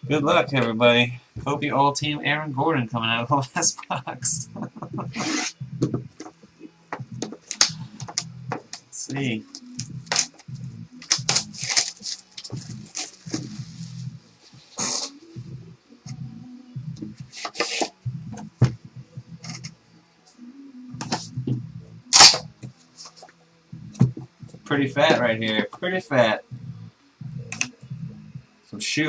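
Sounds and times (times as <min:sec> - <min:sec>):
plastic shrink wrap crinkling: 0:09.5 - 0:10.4, 0:11.0 - 0:14.0.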